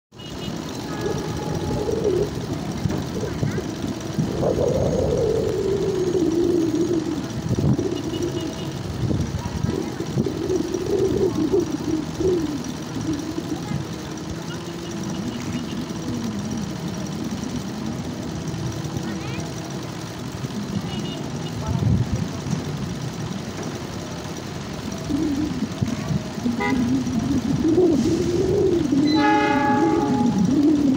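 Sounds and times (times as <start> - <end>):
outdoor background noise: 0.1 - 30.9
people talking and calling out: 0.4 - 30.9.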